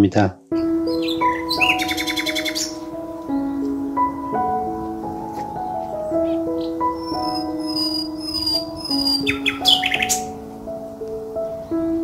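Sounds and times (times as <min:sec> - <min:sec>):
birds chirping: 0:00.0 - 0:12.0
soft background music: 0:00.0 - 0:12.0.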